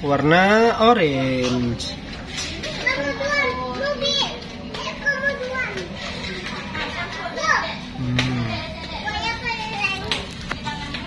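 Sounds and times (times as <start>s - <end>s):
children chattering and calling out: 1.4s - 11.0s.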